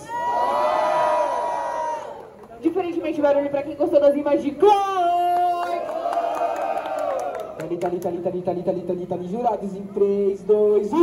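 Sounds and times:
crowd cheering and whooping: 0.0s - 2.3s, 5.8s - 7.6s.

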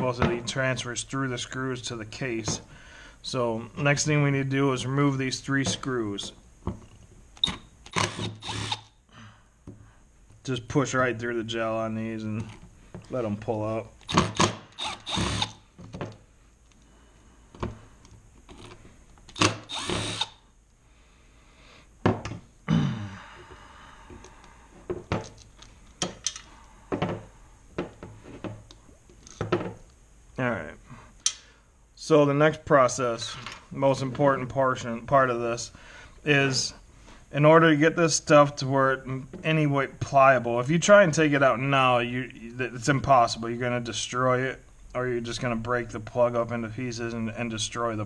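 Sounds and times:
power driver running: 7.4s - 8.9s, 14.0s - 15.6s, 19.3s - 20.4s.

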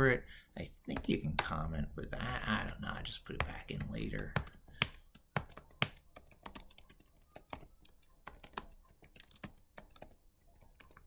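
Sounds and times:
computer keyboard typing: 2.2s - 11.0s.

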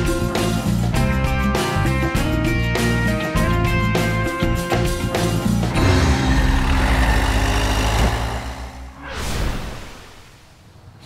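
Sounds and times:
theme music: 0.0s - 9.5s
engine revving loudly: 5.7s - 9.0s.

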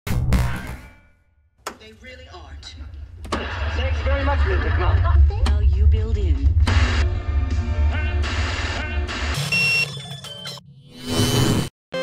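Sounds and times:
music with heavy bass: 3.4s - 9.4s
electronic beep: 9.4s - 10.6s.

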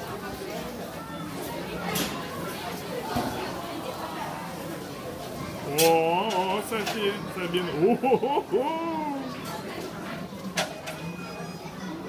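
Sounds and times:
indistinct background voices: 5.6s - 10.0s.

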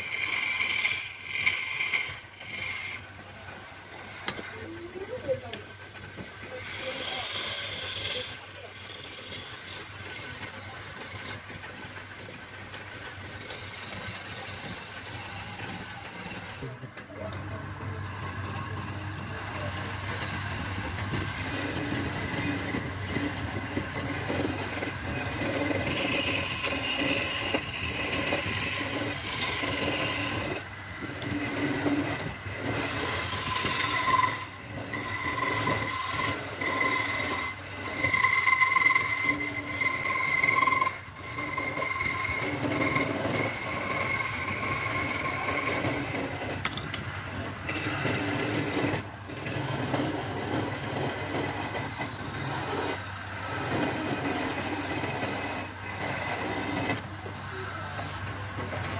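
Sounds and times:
wood lathe scraper cutting: 0.0s - 58.9s.

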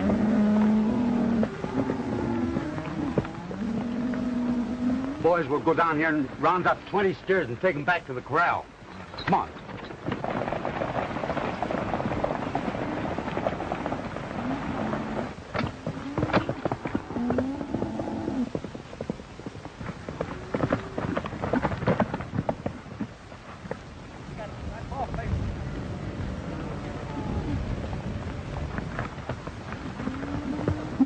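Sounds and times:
hoofbeats: 0.0s - 31.0s.

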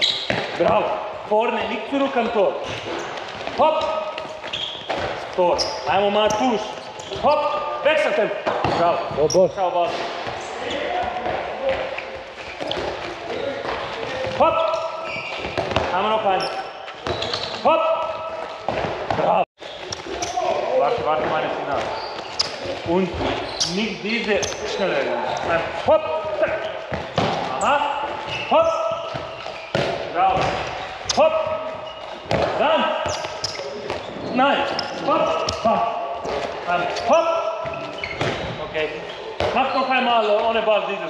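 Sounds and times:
ball bouncing on wooden floor: 29.0s - 30.7s
handball striking with thud: 29.0s - 30.7s.

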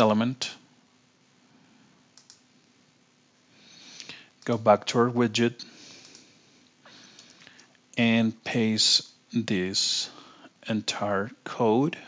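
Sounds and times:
computer mouse clicks: 2.2s - 2.4s, 5.9s - 6.3s, 7.1s - 7.8s.

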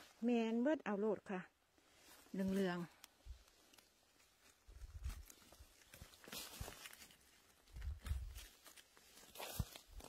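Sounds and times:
rustling of moss and twigs: 0.0s - 10.0s
soft thuds of picking mushrooms: 2.2s - 10.0s.

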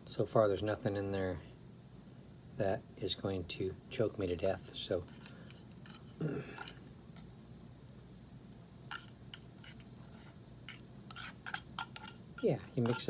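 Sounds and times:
fork scraping inside a metal can: 8.9s - 13.0s.

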